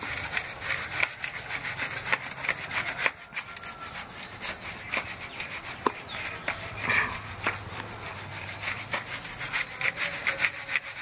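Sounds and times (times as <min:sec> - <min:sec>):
hand scraping sand on concrete: 0:00.0 - 0:11.0.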